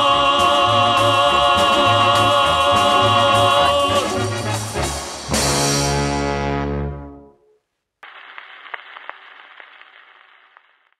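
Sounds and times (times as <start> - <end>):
record surface hiss and crackle: 7.7 - 11.0
sharp record clicks: 8.0 - 11.0.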